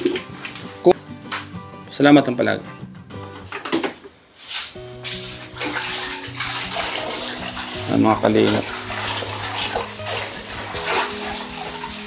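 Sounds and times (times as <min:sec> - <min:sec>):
water splashing on tiled floor: 0:00.0 - 0:00.8, 0:04.4 - 0:12.0
background music: 0:00.0 - 0:03.5, 0:04.6 - 0:12.0.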